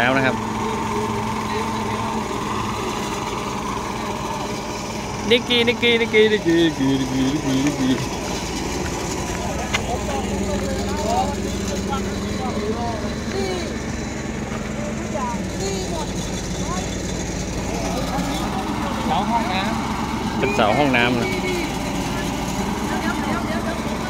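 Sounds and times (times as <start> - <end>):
faint voices talking: 0.0 - 24.0
truck engine idling: 0.0 - 24.0.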